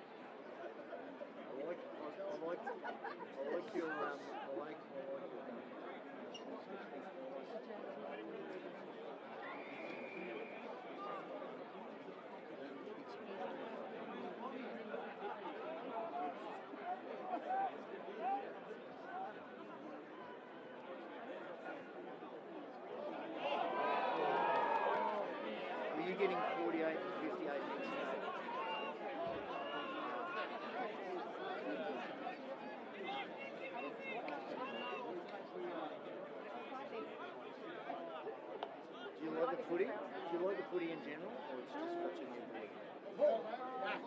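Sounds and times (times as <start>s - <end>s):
crowd chattering and calling out: 0.0s - 44.0s.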